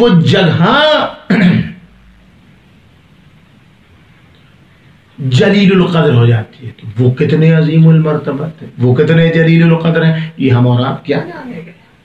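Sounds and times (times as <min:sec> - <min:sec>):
man clearing his throat: 0:01.3 - 0:01.9.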